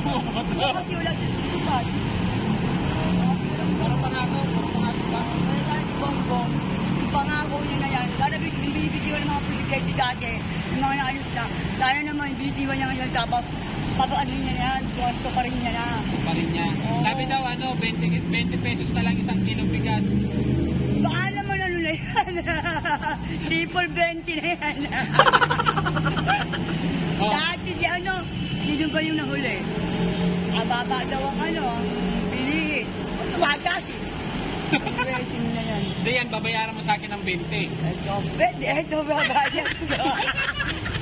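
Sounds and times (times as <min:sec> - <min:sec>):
road traffic rumble: 0:00.0 - 0:41.0
people talking: 0:38.7 - 0:41.0.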